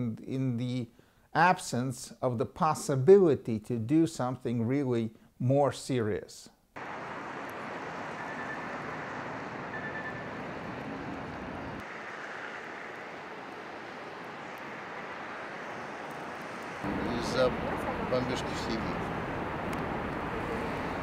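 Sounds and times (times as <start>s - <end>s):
outdoor hiss: 6.8s - 21.0s.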